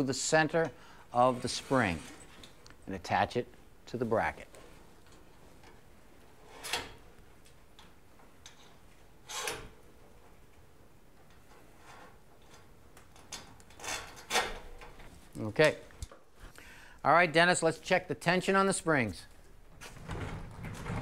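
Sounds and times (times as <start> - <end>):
cable scraping and clicking on metal: 0.6 - 2.8, 11.2 - 15.4.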